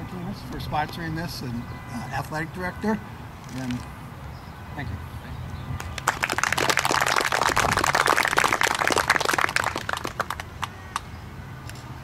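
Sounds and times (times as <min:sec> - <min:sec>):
audience applauding: 0:05.8 - 0:11.0.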